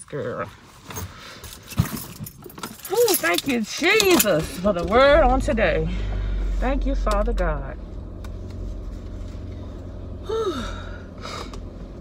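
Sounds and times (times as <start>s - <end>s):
car engine hum inside cabin: 2.8s - 12.0s
woman sighing: 10.2s - 11.6s.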